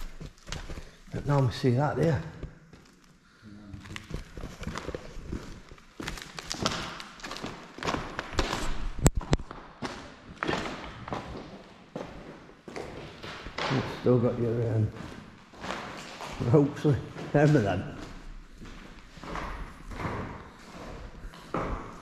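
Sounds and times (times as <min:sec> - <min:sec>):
footsteps on concrete floor: 0:00.0 - 0:03.2, 0:03.8 - 0:22.0.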